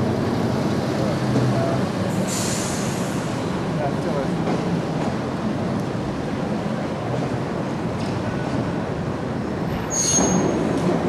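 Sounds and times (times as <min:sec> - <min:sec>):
electric tram rumbling: 0:00.0 - 0:11.0
short hiss: 0:02.2 - 0:03.3.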